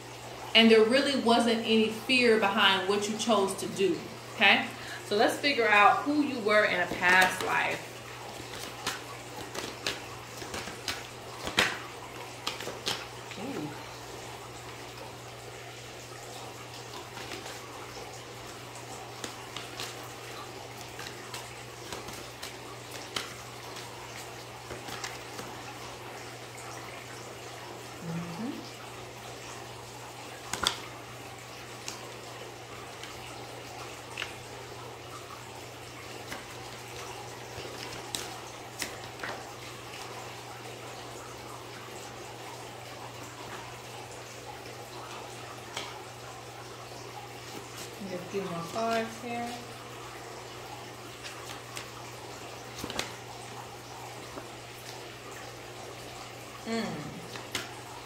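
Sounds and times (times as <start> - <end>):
steady hiss and low hum: 0.0 - 58.0
cards shuffled and dealt: 6.9 - 13.3, 19.1 - 20.1, 20.8 - 25.7, 30.5 - 30.9, 36.1 - 39.5, 52.7 - 53.2, 57.3 - 57.8.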